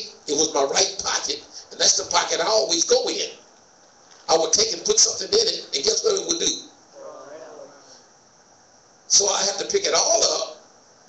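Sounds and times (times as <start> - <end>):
faint voice: 7.0 - 8.0.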